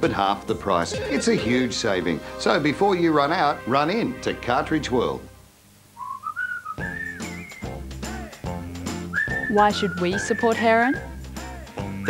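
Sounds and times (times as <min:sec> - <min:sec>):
whistled tune: 0:06.0 - 0:07.9, 0:08.9 - 0:12.0.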